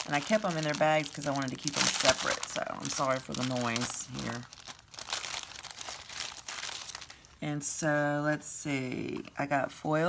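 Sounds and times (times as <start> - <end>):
plastic bag crinkling: 0.0 - 7.4.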